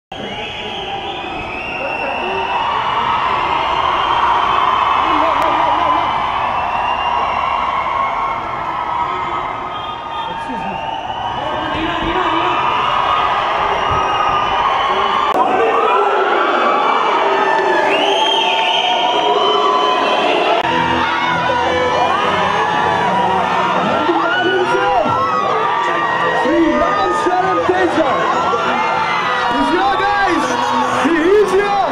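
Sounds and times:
crowd cheering and shouting: 0.1s - 31.9s.

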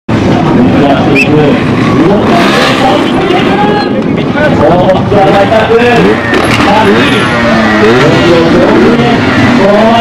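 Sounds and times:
people's voices: 0.1s - 10.0s.

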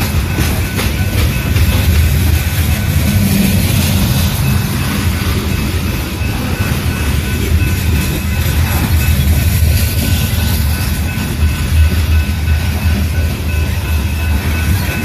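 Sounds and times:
train wheels rumbling on rail: 0.0s - 15.0s.

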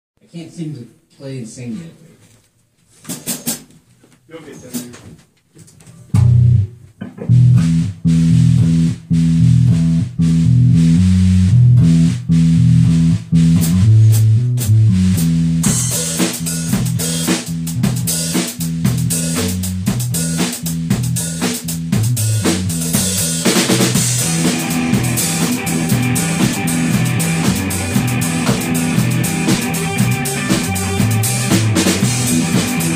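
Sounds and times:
drum kit with cymbals: 3.0s - 3.7s, 6.1s - 32.9s
guitar: 6.1s - 15.0s, 23.4s - 32.9s
bass line: 6.1s - 32.9s.

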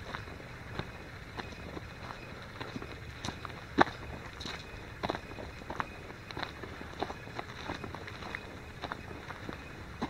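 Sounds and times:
footsteps on rocky gritty track: 0.0s - 10.0s.

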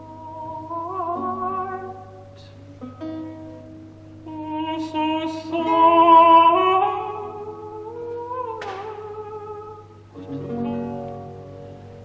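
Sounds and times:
countertenor singing: 0.0s - 3.0s, 4.2s - 11.3s
lute plucked notes: 0.0s - 12.0s.

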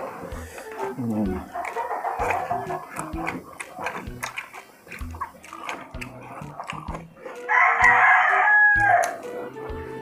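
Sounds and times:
chewing and lip smacks: 0.0s - 9.5s
rooster crowing: 7.5s - 9.2s.

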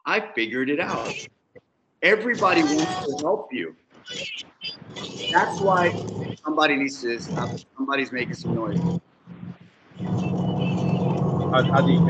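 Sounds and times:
low hum: 4.7s - 12.0s.

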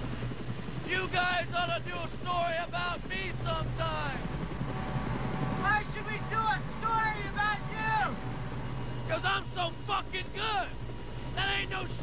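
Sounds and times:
helicopter drone: 0.0s - 12.0s
men talking: 0.8s - 4.3s, 5.6s - 8.4s, 9.0s - 12.0s.

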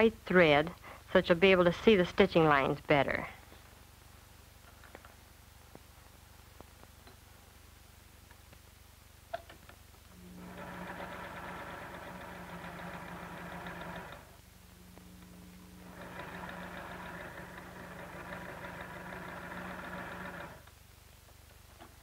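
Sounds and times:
sewing machine running: 10.2s - 14.4s, 15.8s - 20.6s.

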